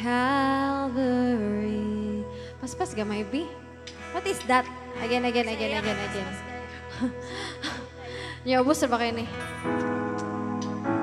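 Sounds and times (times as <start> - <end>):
held instrumental chord: 2.9 - 11.0.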